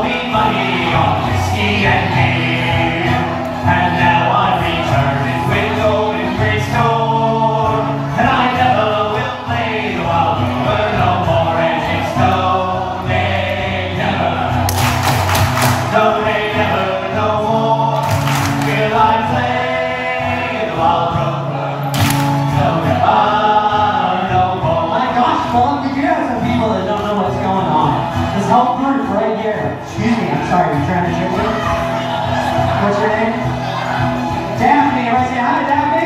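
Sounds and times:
men singing together: 0:00.0 - 0:26.6
acoustic guitar: 0:00.0 - 0:36.0.

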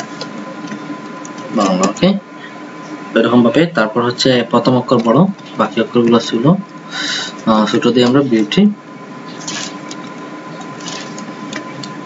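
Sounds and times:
background hum: 0:00.0 - 0:12.0.

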